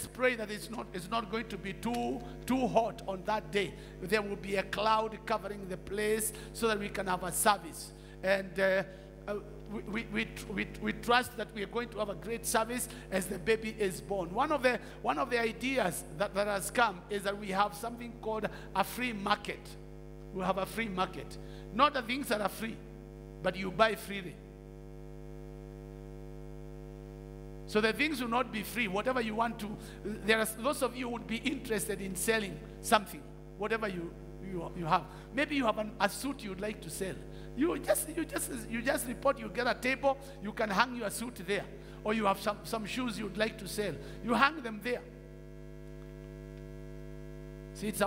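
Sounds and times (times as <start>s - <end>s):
electrical mains hum: 0.0s - 48.0s.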